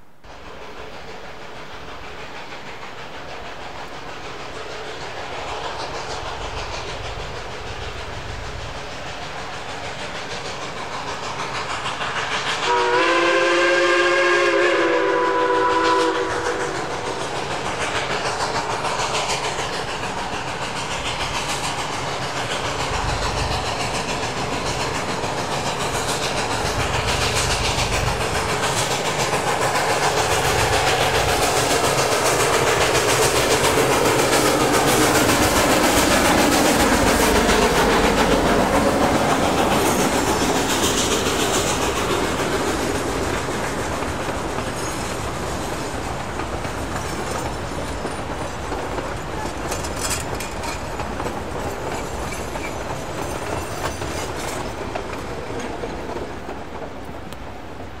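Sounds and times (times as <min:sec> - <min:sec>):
steam locomotive passing: 0:00.0 - 0:58.0
train wheels clicking over rail joints: 0:00.2 - 0:58.0.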